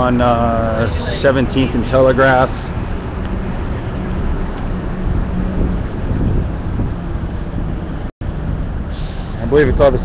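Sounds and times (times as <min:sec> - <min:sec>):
street traffic: 0:00.0 - 0:10.0
wind buffeting microphone: 0:02.7 - 0:10.0.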